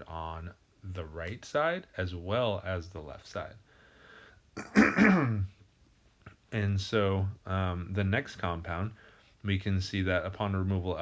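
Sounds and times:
person clearing throat: 0:04.6 - 0:05.6.

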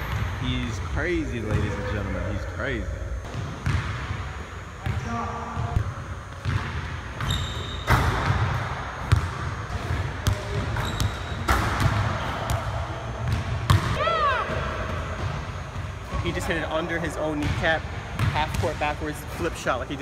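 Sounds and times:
shoe squeak: 0:07.2 - 0:08.0, 0:10.7 - 0:11.5.

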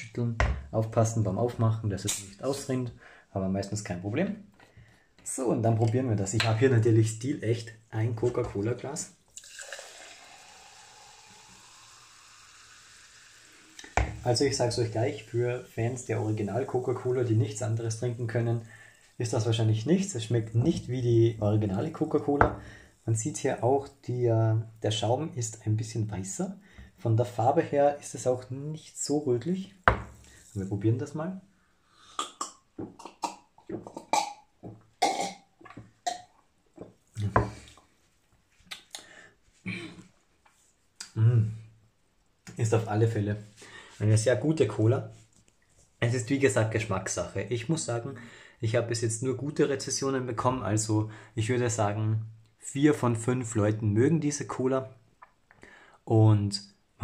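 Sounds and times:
cola poured into glass fizzing: 0:09.3 - 0:17.1
person gulping and swallowing: 0:32.0 - 0:37.8.

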